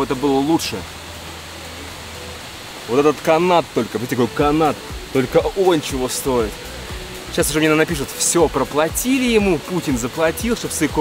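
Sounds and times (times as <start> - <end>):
mountain stream rushing: 0.0 - 11.0.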